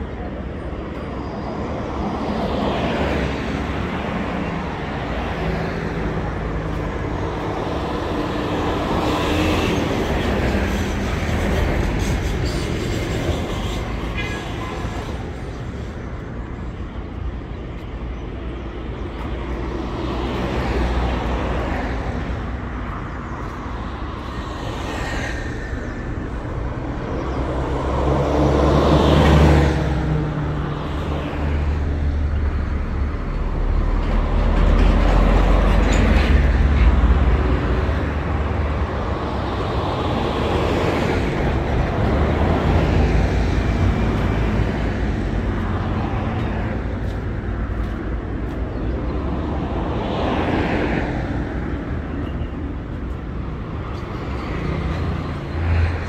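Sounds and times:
vehicles passing: 0.0 - 56.0.

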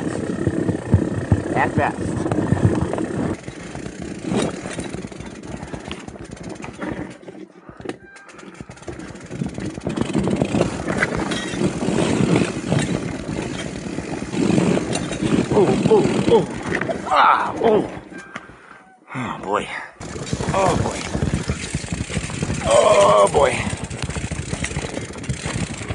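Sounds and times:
brush scraping along bike: 0.0 - 18.8, 20.0 - 25.9.

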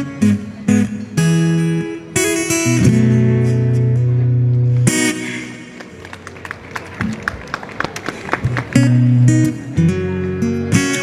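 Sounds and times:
acoustic guitar strummed chords: 0.0 - 5.8, 8.8 - 11.0.

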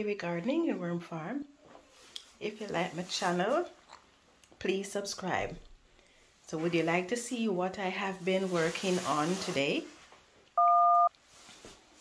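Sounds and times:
telephone keypad tone: 10.6 - 11.1.

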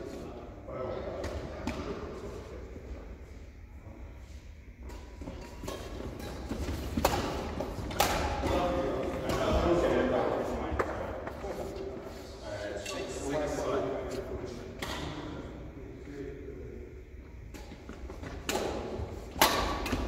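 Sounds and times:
rackets smacking shuttlecock: 4.9 - 9.5, 17.5 - 20.0
players' voices: 6.5 - 17.3.

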